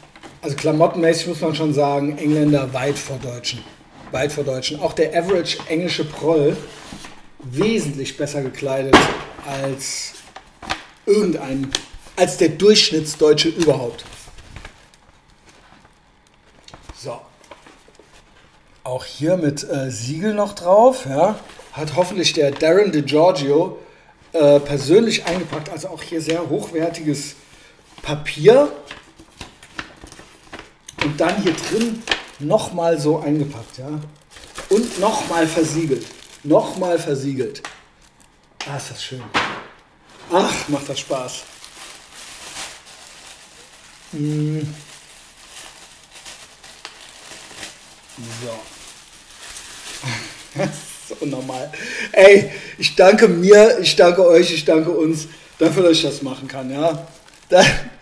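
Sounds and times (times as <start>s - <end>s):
paper package rustling: 0.0s - 19.2s, 20.1s - 23.5s, 24.4s - 58.0s
cardboard box and envelope rustling: 28.9s - 37.0s, 40.1s - 51.7s.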